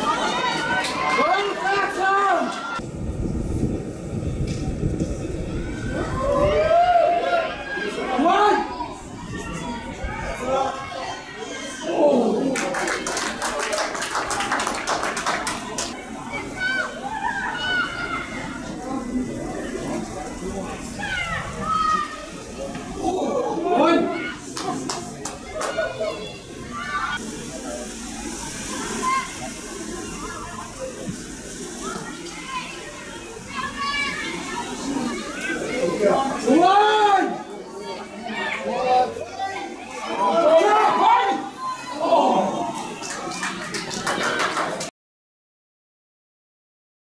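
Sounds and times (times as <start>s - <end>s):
people clapping: 0.0s - 2.8s, 12.4s - 16.0s, 24.4s - 26.1s, 42.7s - 44.9s
wind rumbling on microphone: 2.8s - 7.5s, 8.8s - 10.8s
people shouting: 5.8s - 12.6s, 19.8s - 24.8s, 31.9s - 37.4s, 38.3s - 42.9s
falling rain hiss: 12.6s - 44.7s.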